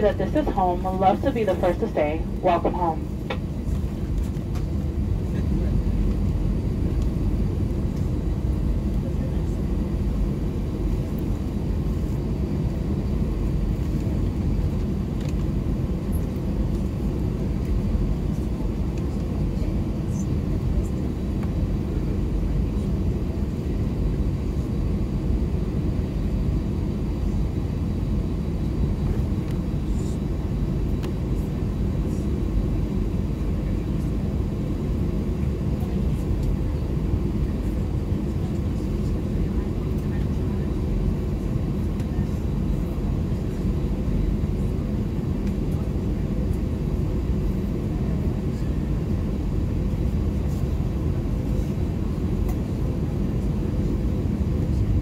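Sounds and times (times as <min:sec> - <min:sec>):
jet engines idling inside cabin: 0:00.0 - 0:55.0.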